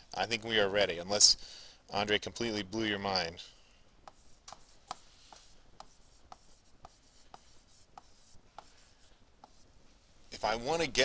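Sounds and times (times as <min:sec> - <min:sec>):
stylus tapping on tablet screen: 0:04.0 - 0:08.8.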